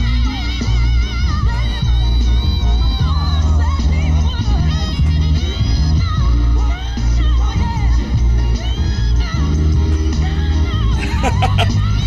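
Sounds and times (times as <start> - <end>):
women singing a duet: 0.0 - 12.0.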